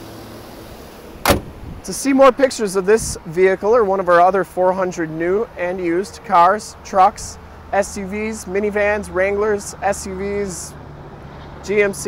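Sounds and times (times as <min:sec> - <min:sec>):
car hood slamming shut: 0:01.1 - 0:01.8.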